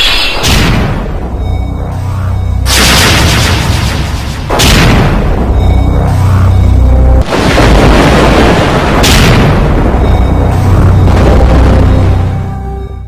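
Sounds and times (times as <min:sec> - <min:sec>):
film trailer music: 0:00.0 - 0:13.0
deep rumbling bass: 0:00.8 - 0:13.0
heavy booming hits: 0:02.6 - 0:12.4
bright crashing burst: 0:02.7 - 0:06.3.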